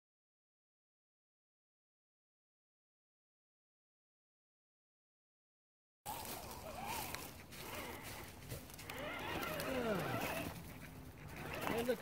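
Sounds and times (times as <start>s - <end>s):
electric motor whining: 6.1s - 12.0s.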